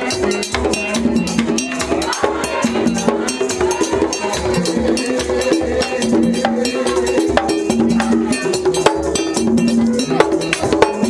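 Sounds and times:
skin drum beaten: 0.0 - 11.0.

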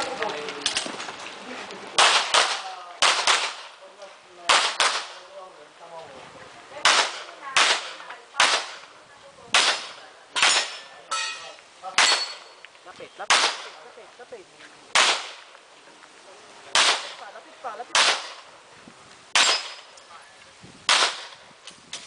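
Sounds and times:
handgun shots: 6.8 - 8.8, 12.0 - 12.4, 13.3 - 13.7, 15.0 - 15.4, 16.7 - 17.2, 17.9 - 18.4, 19.4 - 19.9, 20.9 - 21.4.

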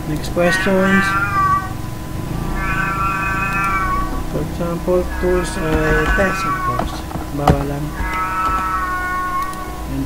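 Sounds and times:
cat meowing: 0.4 - 1.8, 2.6 - 10.0.

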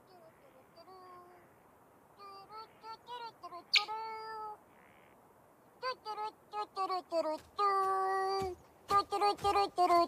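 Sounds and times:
cartoon bird calls: 2.6 - 4.4.

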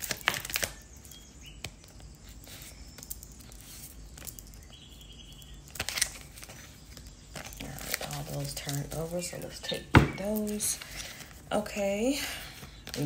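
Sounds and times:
crinkly rustling handling noise: 5.6 - 13.0.

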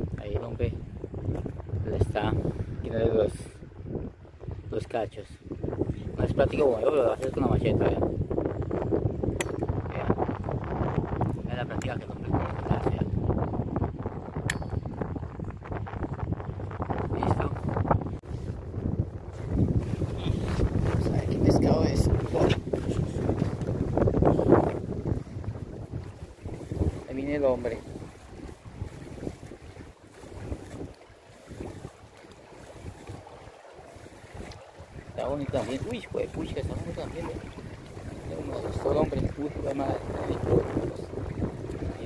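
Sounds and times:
wind rumbling against microphone: 0.0 - 42.0.

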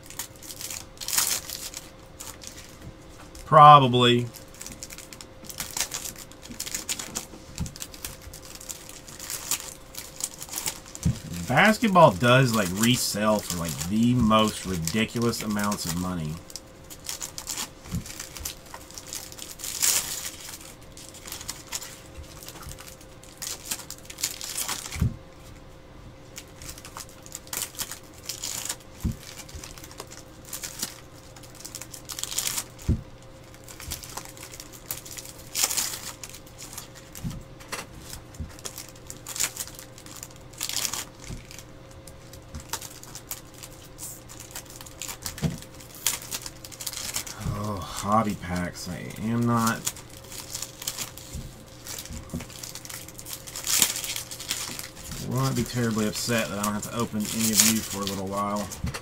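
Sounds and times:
foil wrappers crinkling and tearing: 0.0 - 25.6, 26.2 - 59.0
faint hum: 0.0 - 59.0
person speaking: 3.4 - 4.4, 11.0 - 16.4, 47.3 - 49.9, 55.2 - 58.8.

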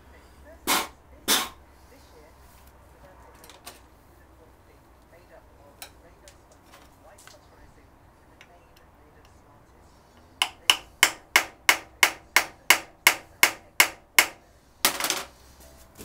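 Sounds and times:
hammer tapping screwdriver: 10.4 - 14.4.

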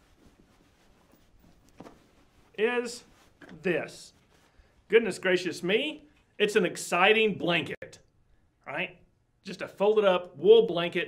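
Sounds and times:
wool blanket rustling: 0.0 - 5.2.

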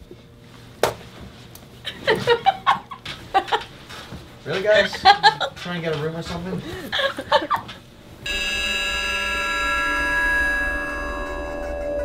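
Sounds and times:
sustained synthesizer chord: 8.2 - 12.0.

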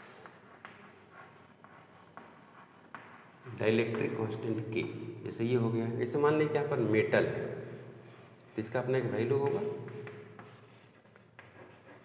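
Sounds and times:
chalk writing on blackboard: 0.0 - 4.4, 7.6 - 12.0.

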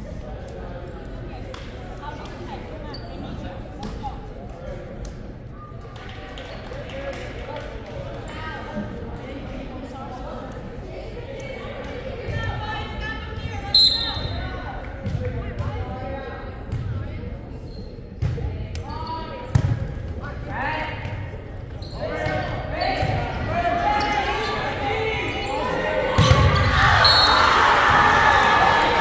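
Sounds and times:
whistle blast: 13.8 - 14.3, 26.9 - 27.5
spectators talking: 18.4 - 29.0
crowd cheering: 23.6 - 29.0.

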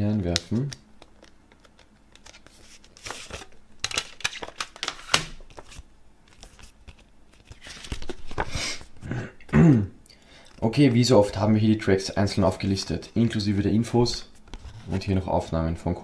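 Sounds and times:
paper rustling: 0.3 - 8.9.

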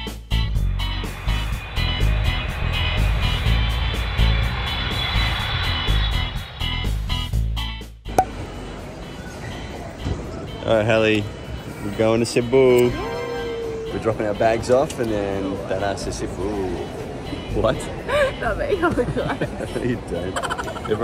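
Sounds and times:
crowded terminal hubbub: 8.2 - 21.0.

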